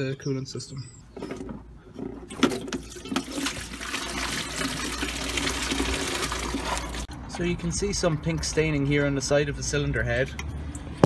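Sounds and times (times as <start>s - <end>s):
coolant splashing into bucket: 2.2s - 7.1s.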